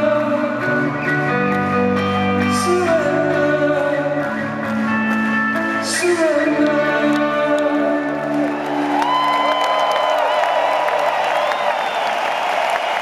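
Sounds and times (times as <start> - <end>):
crowd cheering and applauding: 7.0 - 13.0
shrill whistles: 9.1 - 13.0.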